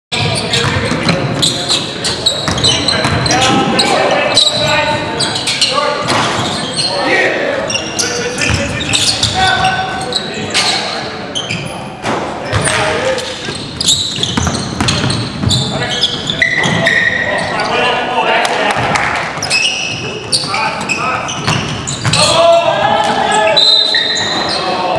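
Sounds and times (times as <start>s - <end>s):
players calling out: 0.2s - 11.8s, 12.5s - 24.9s.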